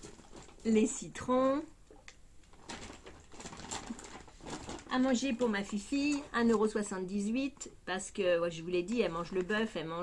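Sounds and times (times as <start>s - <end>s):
packaging rustling: 0.0s - 1.0s, 2.4s - 6.6s.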